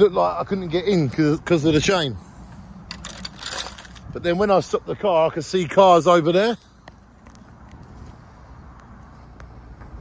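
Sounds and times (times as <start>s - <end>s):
metal chain clinking and rattling: 2.9s - 4.2s.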